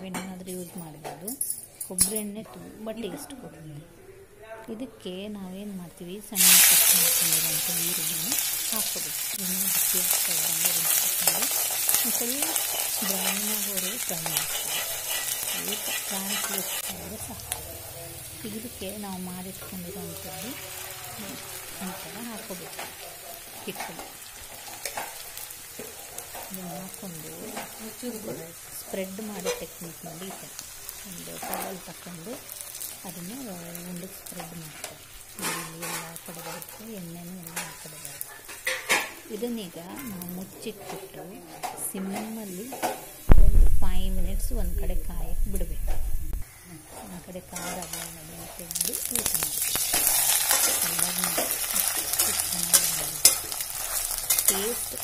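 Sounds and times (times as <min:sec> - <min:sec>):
food sizzling in hot oil: 0:06.3 - 0:55.0
loud low rumble: 0:43.3 - 0:46.4.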